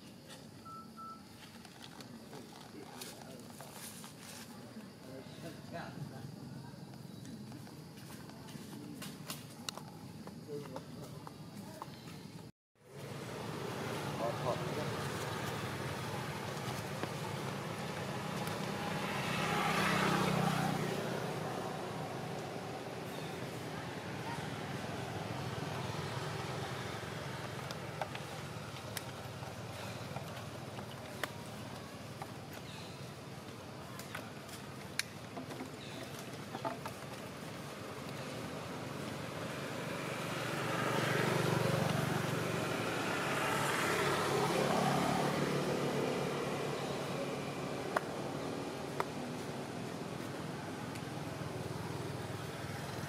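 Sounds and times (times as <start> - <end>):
vehicle passing by: 12.9 - 33.8, 36.6 - 53.0.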